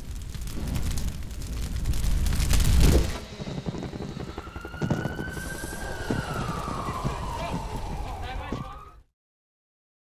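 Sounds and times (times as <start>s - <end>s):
low crackling noise: 0.0s - 8.6s
siren wailing: 3.4s - 9.1s.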